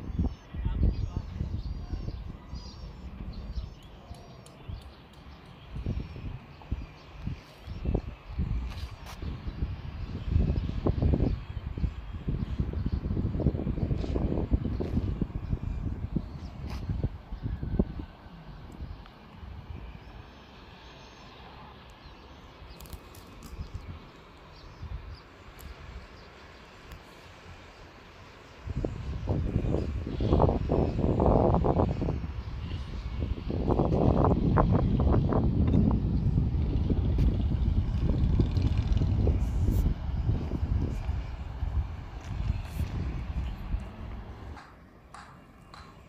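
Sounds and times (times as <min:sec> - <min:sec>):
wind on microphone: 0:00.0 - 0:20.2, 0:22.6 - 0:26.3, 0:28.5 - 0:44.8
distant engine rumble: 0:07.9 - 0:46.0.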